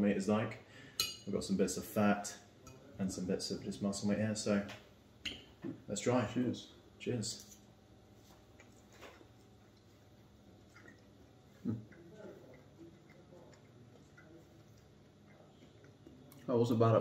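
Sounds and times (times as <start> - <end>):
faint chewing: 7.4 - 17.0.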